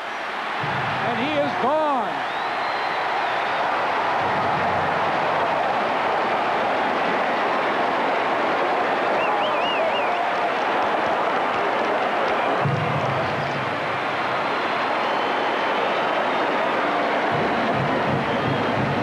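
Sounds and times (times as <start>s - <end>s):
stadium crowd cheering: 0.0s - 19.0s.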